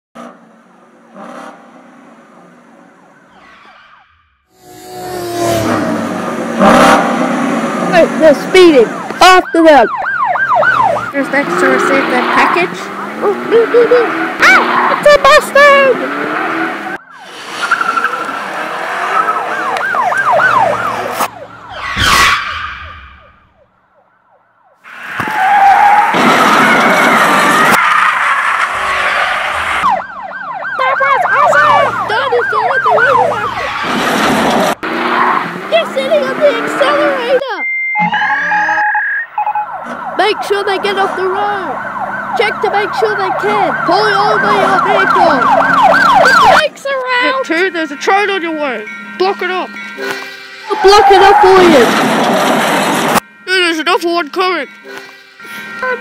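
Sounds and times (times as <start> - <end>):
car noise: 0.2 - 56.0
emergency siren wailing: 2.4 - 56.0
wavering screech: 3.2 - 6.0, 21.7 - 23.5, 48.8 - 52.0
car engine speeding past: 3.2 - 8.2
loud crash: 21.7 - 23.5.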